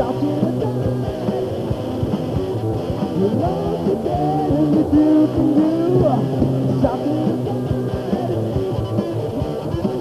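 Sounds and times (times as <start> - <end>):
distorted electric guitars: 0.0 - 10.0.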